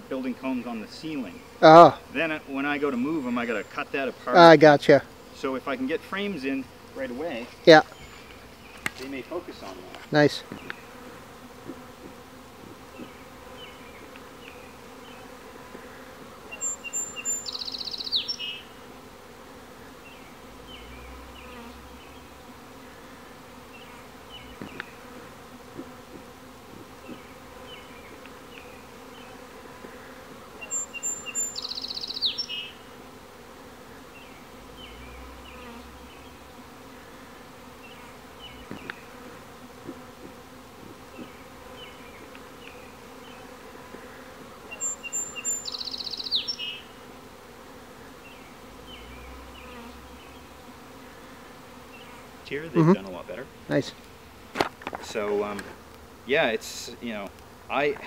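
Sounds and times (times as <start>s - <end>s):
bee swarm buzzing: 0.0s - 58.0s.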